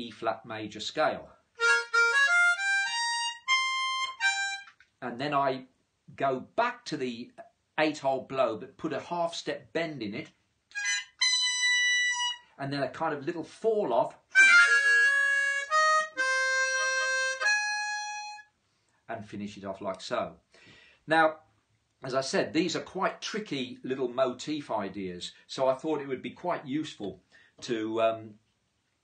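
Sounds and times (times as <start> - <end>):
blues harmonica playing: 1.6 - 4.7, 10.7 - 12.6, 14.3 - 18.5.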